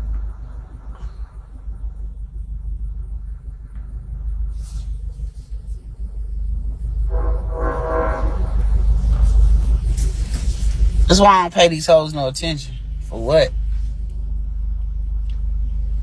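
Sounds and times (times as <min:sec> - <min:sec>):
held hum-like tone: 0:00.0 - 0:16.0
steady low rumble: 0:00.0 - 0:16.0.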